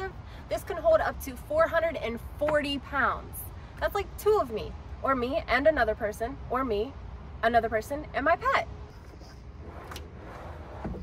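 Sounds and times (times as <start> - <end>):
low thump: 10.8 - 11.0.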